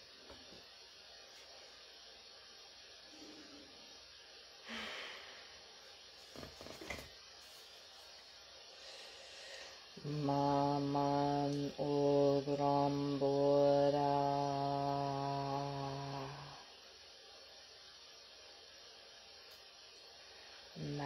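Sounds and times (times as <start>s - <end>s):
person chanting low held notes: 10.0s - 16.6s.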